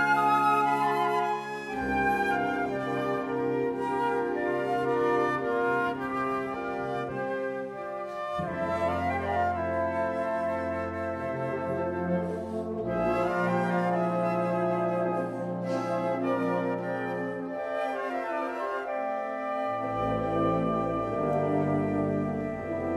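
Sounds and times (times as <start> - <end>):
wind band playing chords: 0.0 - 22.9.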